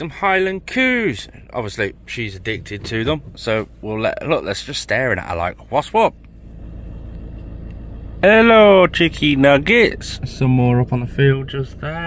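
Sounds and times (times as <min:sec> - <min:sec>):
van engine rumbling: 0:00.0 - 0:12.0.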